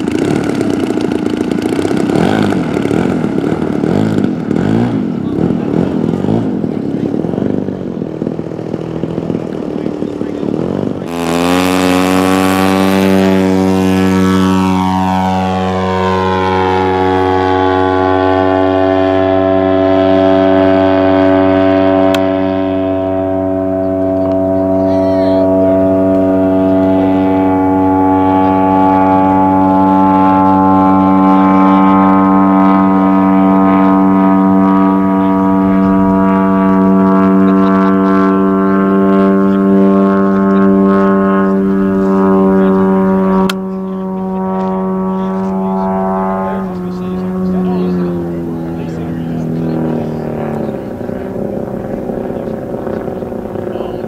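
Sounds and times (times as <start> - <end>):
model plane engine drone: 0.0 - 54.0.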